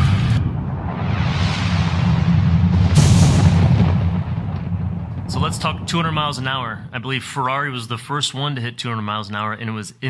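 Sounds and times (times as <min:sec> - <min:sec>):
loud boom: 0:00.0 - 0:08.1
steady low hum: 0:01.9 - 0:08.0.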